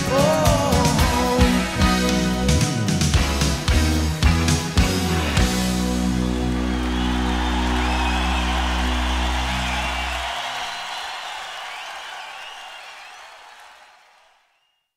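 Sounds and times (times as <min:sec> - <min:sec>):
audience cheering: 0:05.2 - 0:14.7
applause: 0:05.9 - 0:14.9
whistles from crowd: 0:06.5 - 0:14.9.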